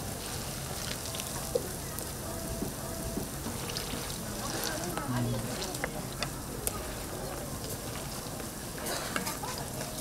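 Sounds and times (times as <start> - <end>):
food sizzling in oil: 0.0 - 10.0.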